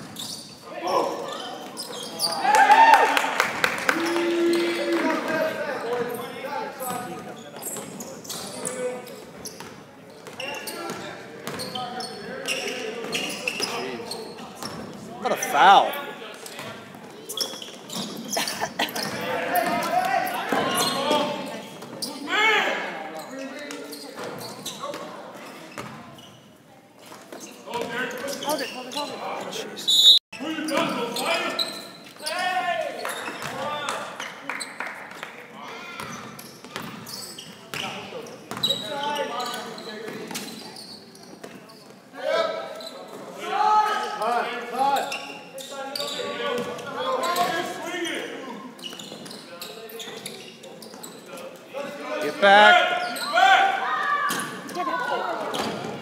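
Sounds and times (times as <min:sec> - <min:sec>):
voices echoing in hall: 0:00.0 - 0:56.0
basketball bouncing on court: 0:36.0 - 0:37.0, 0:38.5 - 0:38.8.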